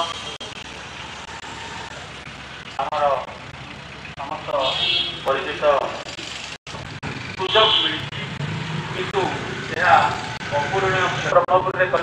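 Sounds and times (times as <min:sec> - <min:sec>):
man speaking into a microphone: 0:07.3 - 0:12.0.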